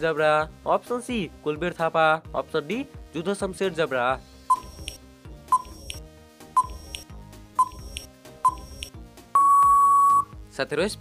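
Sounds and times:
background music: 0.0 - 11.0
long loud steady beep: 4.5 - 5.8, 6.6 - 7.0, 7.6 - 10.3
short countdown beeps: 4.5 - 6.0, 6.6 - 10.3.

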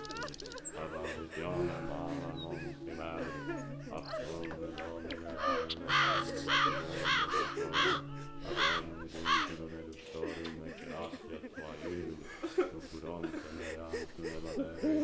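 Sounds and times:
steady low held tones: 0.0 - 9.8
crow cawing: 5.2 - 9.6.

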